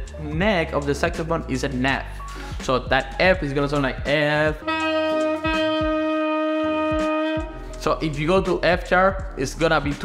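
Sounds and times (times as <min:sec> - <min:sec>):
saxophone mouthpiece steady note: 0:04.5 - 0:07.8.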